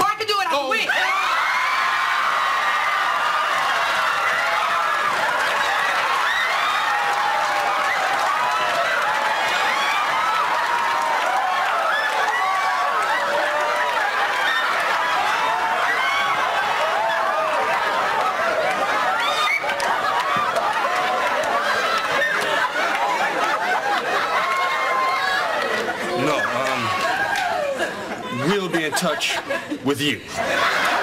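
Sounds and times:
studio audience cheering and applauding: 0:00.8 - 0:29.2, 0:30.0 - 0:31.0.

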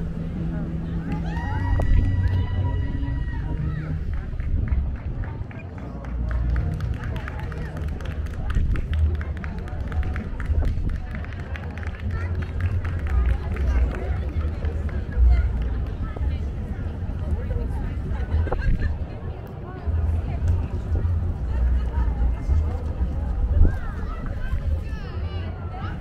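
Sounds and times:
people talking: 0:00.0 - 0:26.0
wind buffeting microphone: 0:00.0 - 0:26.0.

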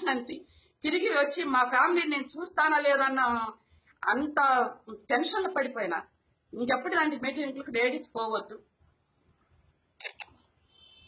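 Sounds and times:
sharp clicks: 0:10.0 - 0:10.5.

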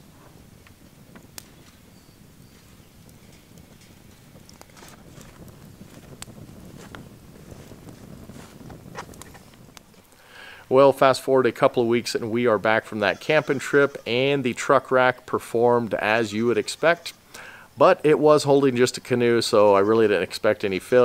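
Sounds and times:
campfire crackling and popping: 0:00.0 - 0:21.0.

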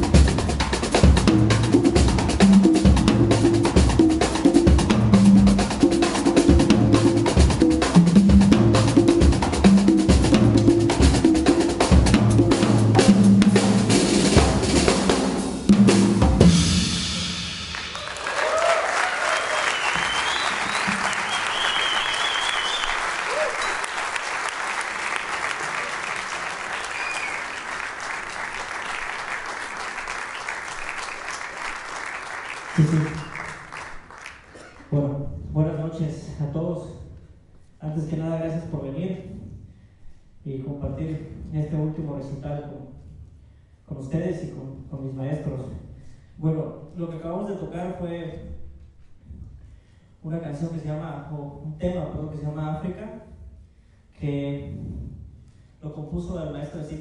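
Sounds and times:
latin jazz percussion: 0:00.0 - 0:18.2
audience applause: 0:17.7 - 0:34.8
audience whistles: 0:17.9 - 0:24.6, 0:25.8 - 0:27.9, 0:30.2 - 0:31.4, 0:32.6 - 0:34.4.

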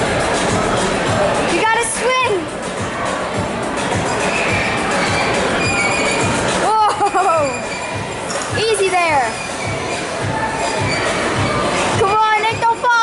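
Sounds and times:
background music: 0:00.0 - 0:13.0
crowd babble: 0:00.0 - 0:13.0
high-pitched shrieks: 0:04.2 - 0:06.6, 0:07.4 - 0:08.3, 0:09.3 - 0:11.9.

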